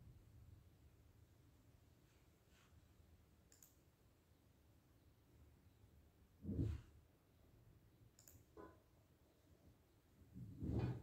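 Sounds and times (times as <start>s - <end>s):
faint click: 3.5s - 3.8s, 8.2s - 8.5s.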